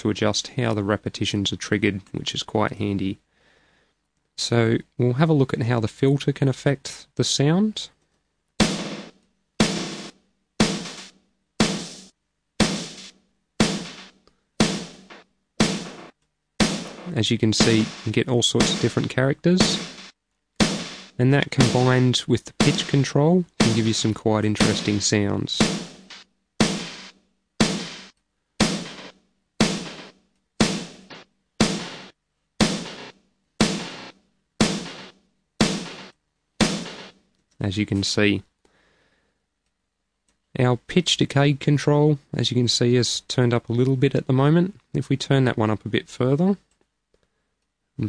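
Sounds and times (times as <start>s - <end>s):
filtered drum loop hits: 8.6s - 37.2s.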